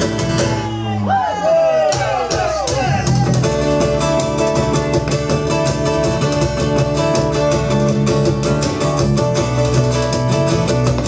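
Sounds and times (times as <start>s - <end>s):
acoustic guitars strummed: 0.0s - 1.0s, 1.8s - 11.0s
live band playing: 0.0s - 11.0s.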